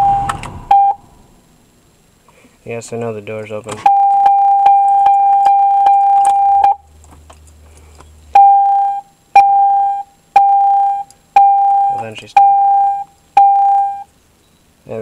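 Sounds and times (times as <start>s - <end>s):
car door warning chime: 0.0s - 1.0s, 3.9s - 6.8s, 8.4s - 14.1s
electronic beeping: 0.0s - 1.1s, 3.8s - 6.8s, 8.4s - 14.6s.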